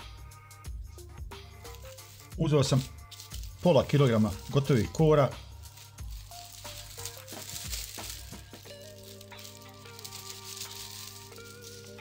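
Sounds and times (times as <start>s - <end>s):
soft background music: 0.0s - 12.0s
plastic and paper crinkling: 1.4s - 12.0s.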